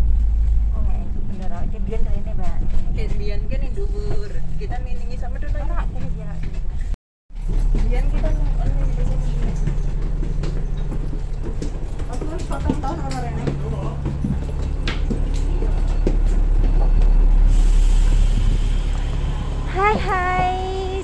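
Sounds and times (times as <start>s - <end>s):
bus engine idling: 7.9s - 21.0s.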